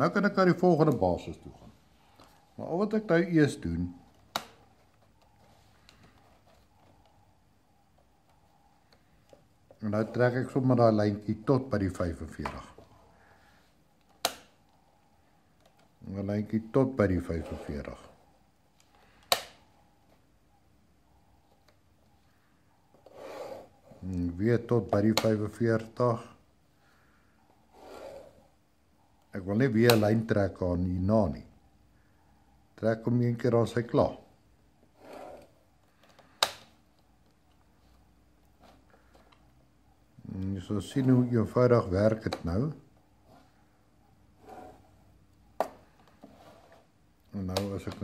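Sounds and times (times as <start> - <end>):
pencil scratching on paper: 23.0 - 24.0, 27.7 - 28.5, 35.0 - 35.5, 44.4 - 45.0.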